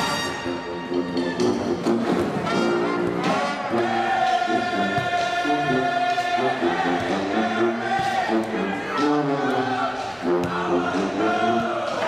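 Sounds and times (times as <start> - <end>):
group singing together: 3.6 - 12.0.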